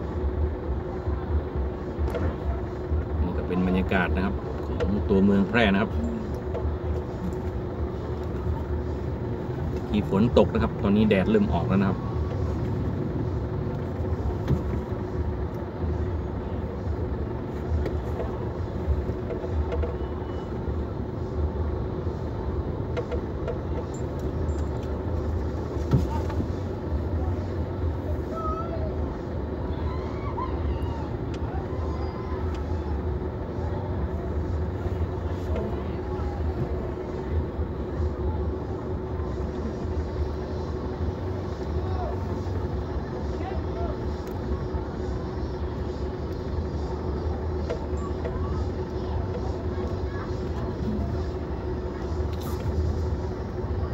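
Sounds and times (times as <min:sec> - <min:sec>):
car engine rumble from inside: 0:00.0 - 0:53.9
faint voices outside: 0:00.0 - 0:53.9.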